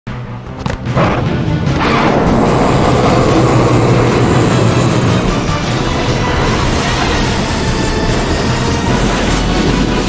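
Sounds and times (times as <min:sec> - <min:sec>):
film music: 0:00.1 - 0:10.0
loud rushing rumble: 0:00.8 - 0:10.0.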